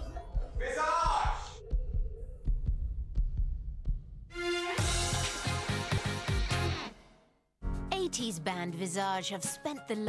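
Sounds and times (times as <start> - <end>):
low heartbeat-like pulsing: 0.0 - 4.3
theme music: 4.3 - 10.0.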